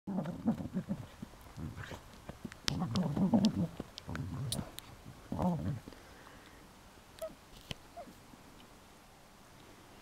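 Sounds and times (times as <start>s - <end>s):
dog growling in play: 0.1s - 2.0s, 2.7s - 4.7s, 5.3s - 5.9s.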